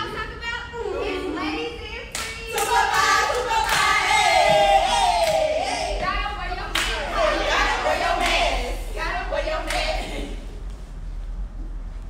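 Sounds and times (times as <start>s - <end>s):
group hand clapping: 2.1s - 5.9s, 6.7s - 8.8s, 9.6s - 10.3s.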